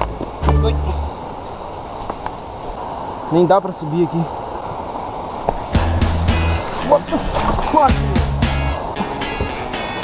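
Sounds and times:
music with bass and drum hits: 0.0 - 1.2, 5.8 - 10.0
background noise: 0.0 - 10.0.

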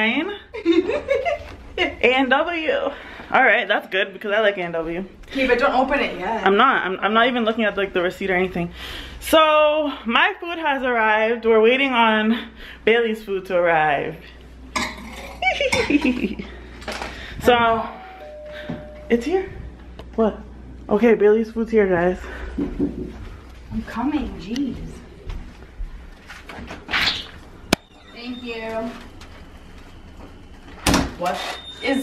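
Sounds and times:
woman laughing: 0.5 - 2.0, 15.4 - 16.6.

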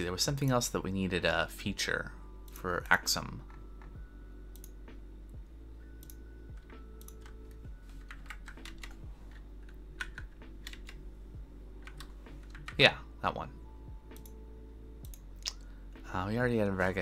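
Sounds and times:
steady low hum: 0.0 - 17.0
computer keyboard typing: 6.0 - 11.0, 11.8 - 12.9.

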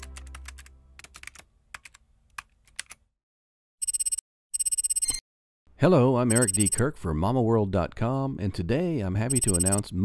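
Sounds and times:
keyboard typing clicks: 6.3 - 6.8, 9.3 - 9.8.

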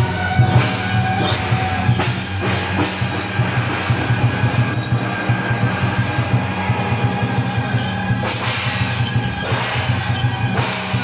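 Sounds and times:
brass gongs ringing: 0.0 - 11.0
drum beating: 0.0 - 11.0.

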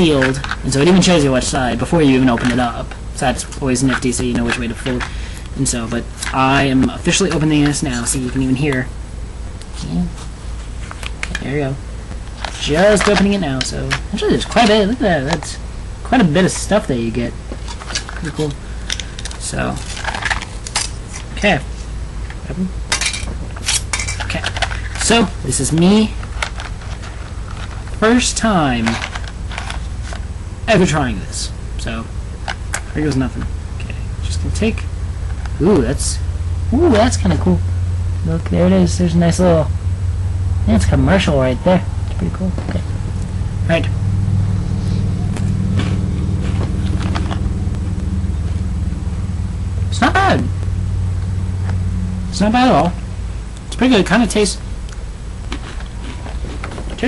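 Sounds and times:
low mechanical hum: 0.0 - 57.0.

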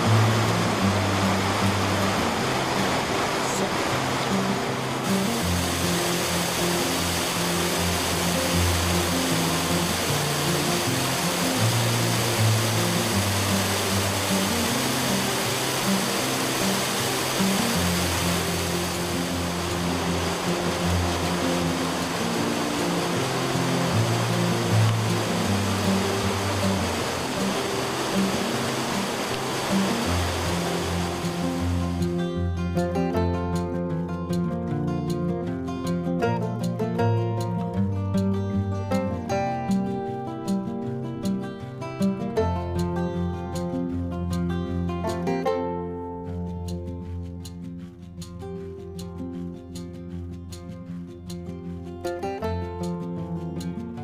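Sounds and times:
flowing water rushing: 0.0 - 34.4
background music with low notes: 0.0 - 54.0.

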